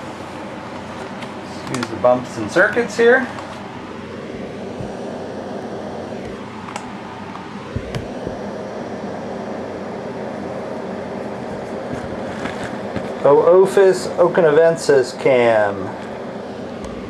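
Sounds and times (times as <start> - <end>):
fan-like mechanical hum and hiss: 0.0 - 17.0.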